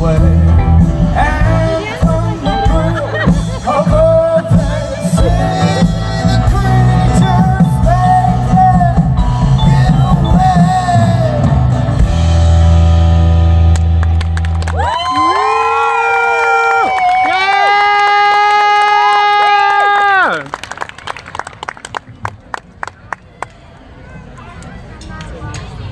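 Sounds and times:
crowd noise: 0.0s - 25.9s.

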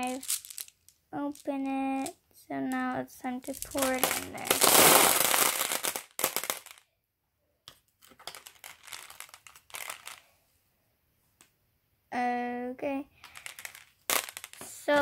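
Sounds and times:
glass marbles clattering: 0.0s - 2.1s, 3.4s - 6.8s, 8.1s - 10.2s, 13.2s - 15.0s
person humming: 3.8s - 4.7s.

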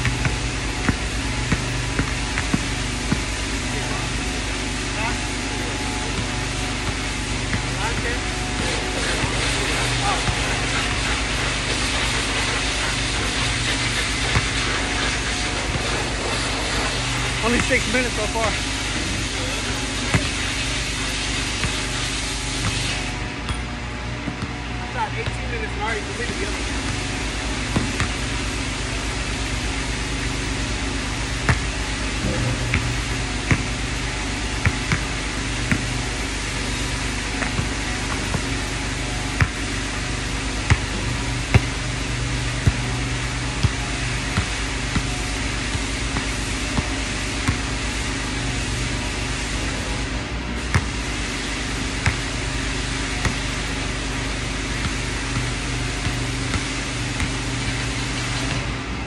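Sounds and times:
basketball bouncing on hard court: 0.0s - 4.4s, 5.5s - 12.2s, 14.2s - 18.6s, 19.7s - 22.0s, 26.3s - 28.5s, 30.5s - 47.8s, 50.7s - 51.0s, 52.0s - 58.7s
steady mechanical hum: 0.0s - 59.0s.

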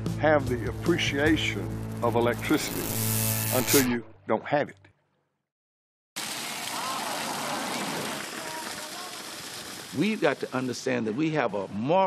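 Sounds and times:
water pouring onto road: 6.2s - 10.9s.

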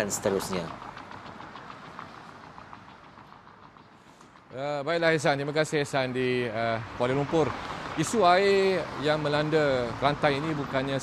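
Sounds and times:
faint roadside traffic: 0.0s - 11.0s
vehicle passing: 0.0s - 11.0s.

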